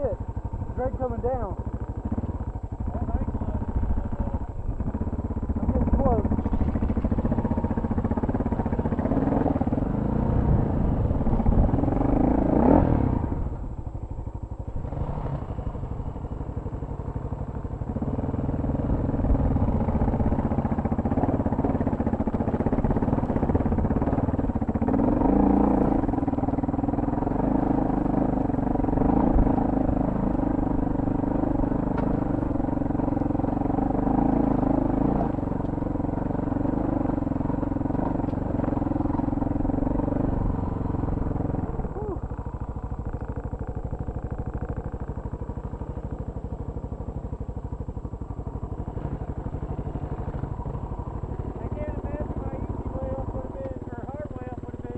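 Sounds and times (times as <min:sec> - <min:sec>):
motorcycle engine under load: 0:00.0 - 0:54.9.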